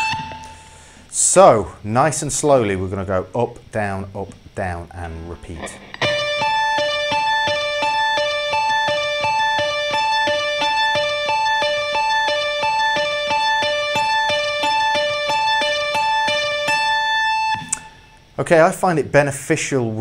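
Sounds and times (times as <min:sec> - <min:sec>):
electric guitar picked notes: 0:00.0 - 0:01.0, 0:05.2 - 0:18.4.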